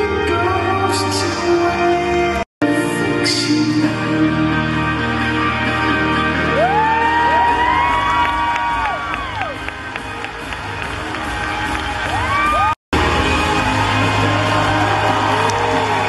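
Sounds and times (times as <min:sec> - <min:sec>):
show music over sound system: 0:00.0 - 0:16.0
audience cheering and whooping: 0:06.4 - 0:16.0.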